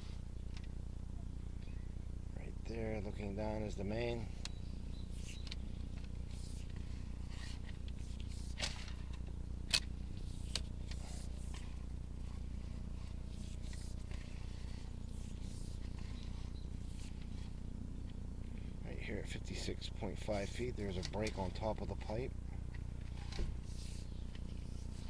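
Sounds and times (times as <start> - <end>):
steady low hum: 0.0 - 25.0.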